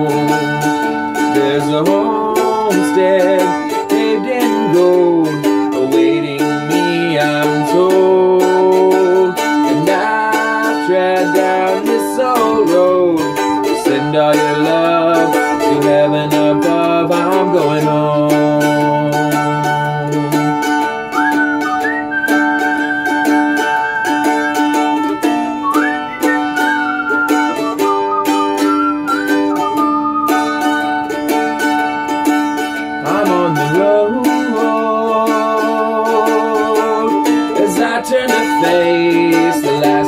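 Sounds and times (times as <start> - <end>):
mandolin playing hymn-like tune: 0.0 - 40.0.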